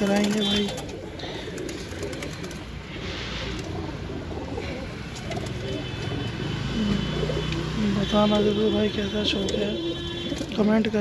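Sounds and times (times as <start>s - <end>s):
pigeons cooing: 0.0s - 8.5s, 9.2s - 10.6s.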